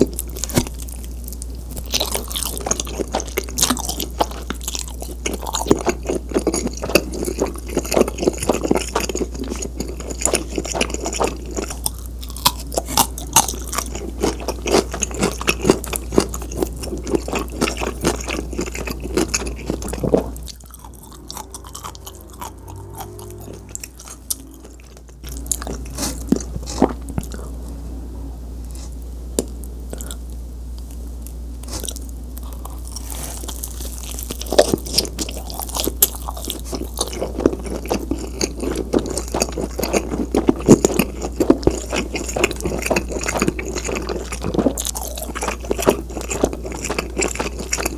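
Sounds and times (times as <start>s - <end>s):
chewing and biting pizza: 0.0s - 27.7s, 28.7s - 47.9s.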